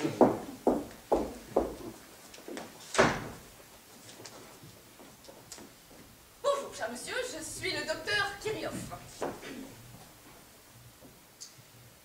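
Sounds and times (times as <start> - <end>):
door banging shut: 2.9 - 3.5
faint small clicks: 11.4 - 11.6.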